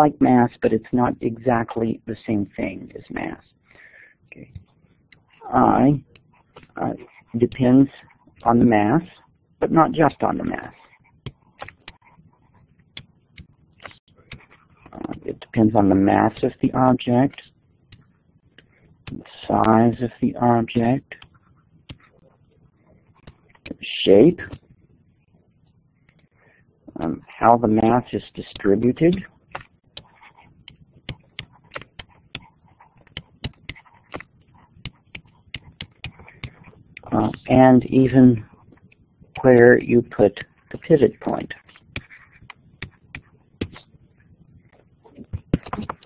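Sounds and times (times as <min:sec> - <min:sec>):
stylus scratching on pen tablet: 0:04.5 - 0:46.0
stylus tapping on tablet screen: 0:28.5 - 0:37.4, 0:41.7 - 0:43.9.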